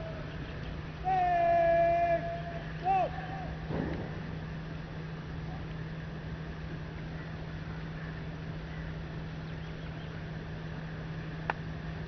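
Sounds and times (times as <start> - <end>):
steady low hum: 0.0 - 12.0
person shouting a command: 1.0 - 3.6.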